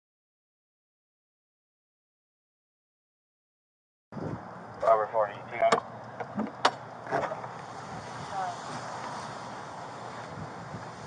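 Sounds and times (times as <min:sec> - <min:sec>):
wind noise: 0:04.1 - 0:04.7, 0:07.2 - 0:11.0
rustling on microphone: 0:07.2 - 0:11.0.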